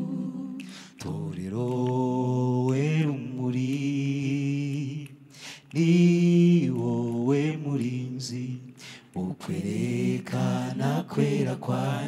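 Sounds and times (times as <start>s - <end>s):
choir singing a cappella: 0.0s - 12.0s.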